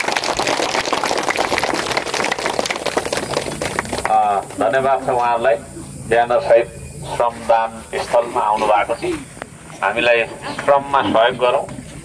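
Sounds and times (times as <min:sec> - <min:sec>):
crowd applauding: 0:00.0 - 0:04.4.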